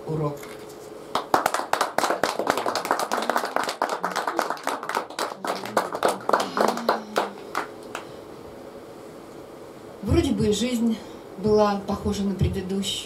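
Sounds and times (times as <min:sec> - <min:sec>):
audience applauding: 0:01.1 - 0:08.1.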